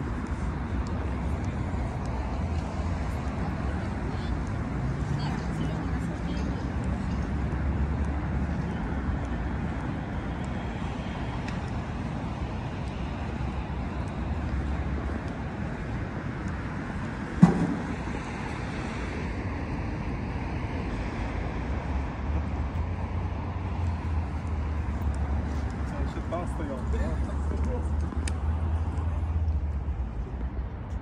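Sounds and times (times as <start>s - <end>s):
road traffic rumble: 0.0s - 31.0s
sharp thump: 17.4s - 18.3s.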